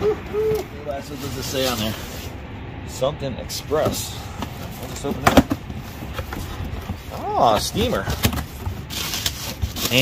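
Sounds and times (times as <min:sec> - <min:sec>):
bubble wrap and cardboard crinkling: 0:06.9 - 0:10.0.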